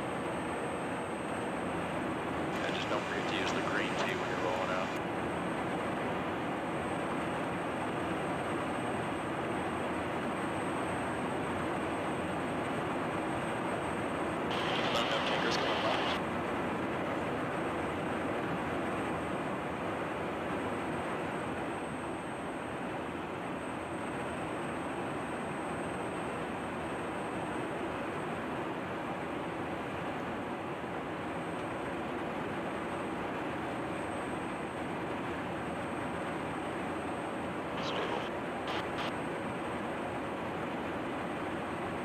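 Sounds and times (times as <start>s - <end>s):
faint high whine: 0.0s - 42.0s
jet aircraft engine rush: 1.3s - 6.6s, 14.4s - 16.3s, 37.6s - 39.2s.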